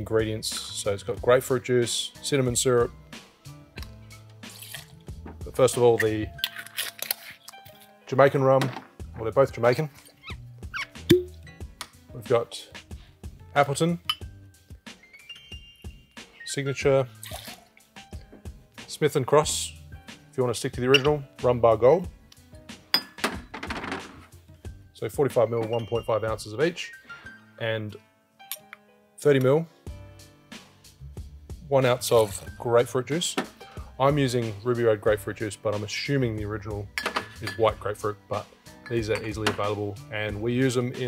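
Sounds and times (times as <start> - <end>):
quiet background music: 0.0 - 41.0
liquid pouring into metal cup: 17.2 - 17.7.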